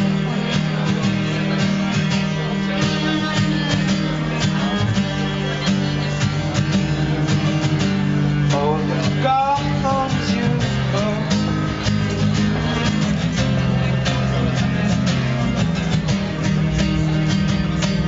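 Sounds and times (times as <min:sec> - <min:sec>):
acoustic guitar strumming: 0:00.0 - 0:18.0
guitar melodic line sliding: 0:00.0 - 0:18.0.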